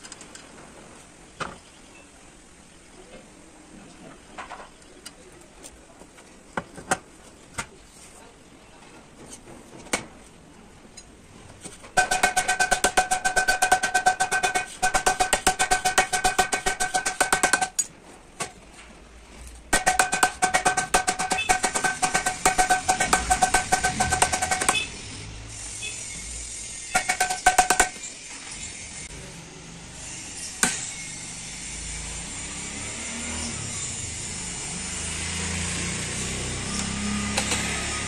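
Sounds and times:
hammer tapping ringing metal: 19.8s - 24.9s, 27.0s - 28.0s.

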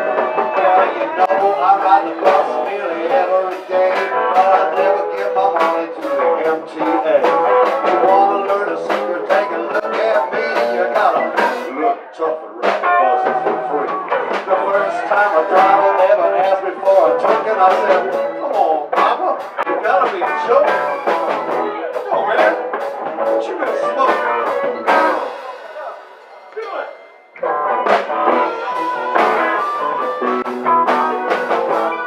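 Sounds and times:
man singing into microphone: 0.0s - 19.0s, 28.3s - 30.5s
bass guitar: 0.0s - 32.0s
live blues band: 0.0s - 32.0s.

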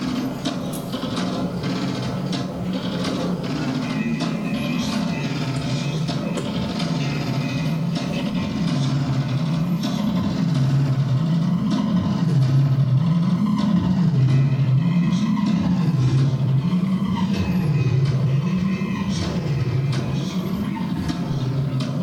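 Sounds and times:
wavering electronic feedback drone: 0.0s - 22.0s.

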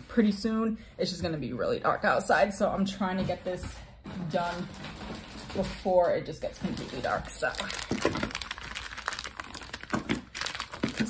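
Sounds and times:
packaging crinkling: 6.6s - 11.0s.

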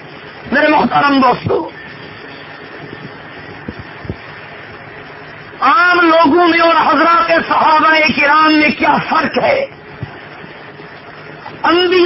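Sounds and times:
background hiss and room noise: 0.0s - 12.0s.

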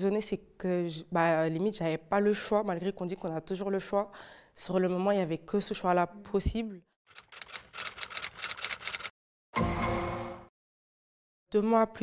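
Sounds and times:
rapid keystroke clicks: 7.1s - 9.1s.

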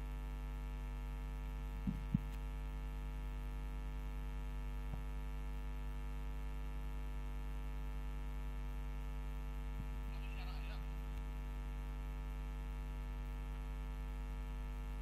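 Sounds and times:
electrical mains hum: 0.0s - 15.0s.

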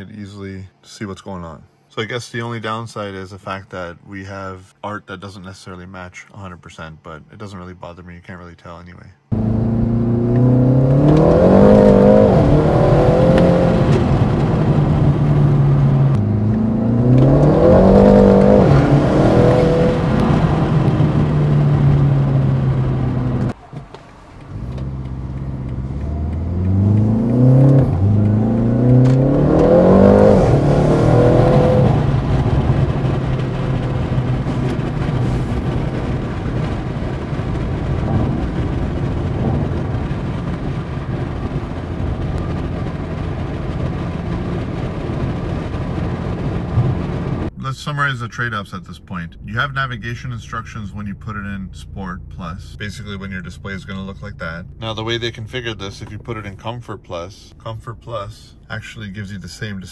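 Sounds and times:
car engine accelerating: 9.3s - 47.6s.

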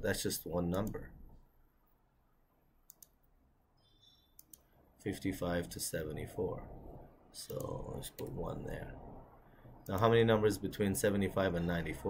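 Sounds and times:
computer mouse clicks: 2.8s - 3.2s, 3.8s - 4.7s.

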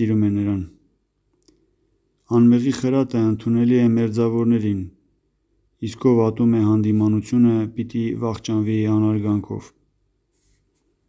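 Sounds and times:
man reading aloud: 0.0s - 0.9s, 2.2s - 5.0s, 5.8s - 9.8s.

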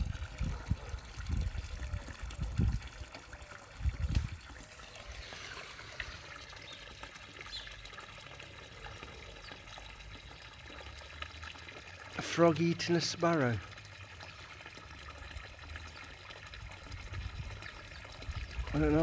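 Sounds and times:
water trickling in a pond: 0.0s - 19.0s.

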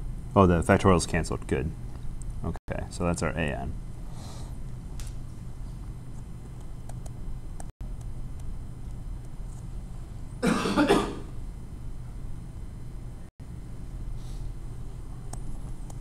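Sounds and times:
low room hum: 0.0s - 16.0s
short cough: 10.4s - 11.3s.

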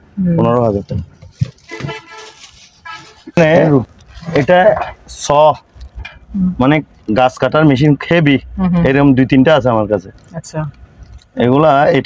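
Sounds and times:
low shop noise: 0.0s - 12.0s
man speaking: 0.4s - 1.1s, 3.3s - 5.6s, 6.6s - 10.2s, 11.4s - 12.0s.

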